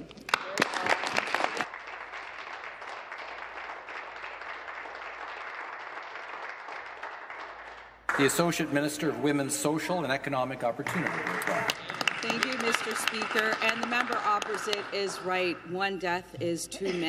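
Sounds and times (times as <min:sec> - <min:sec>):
people applauding: 0:00.0 - 0:08.9, 0:10.8 - 0:15.7.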